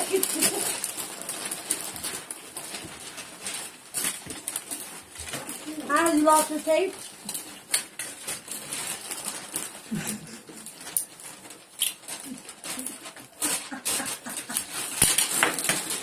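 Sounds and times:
wrapping paper crinkling: 0:00.0 - 0:16.0.

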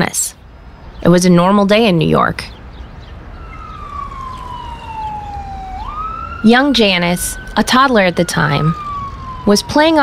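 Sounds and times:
street rumble: 0:00.0 - 0:10.0
siren wailing: 0:03.1 - 0:10.0.

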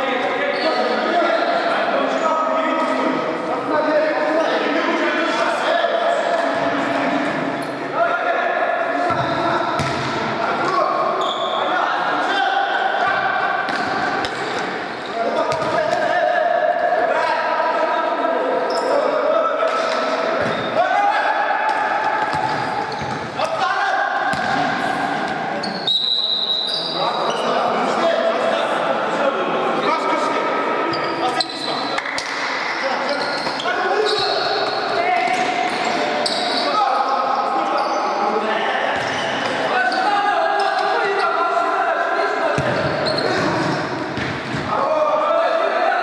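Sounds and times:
ball kicked and bouncing: 0:09.1 - 0:10.2
players shouting: 0:20.5 - 0:25.8.

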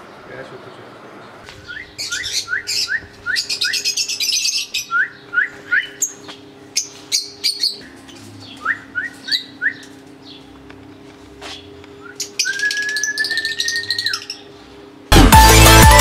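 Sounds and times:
birds chirping: 0:00.0 - 0:15.1.

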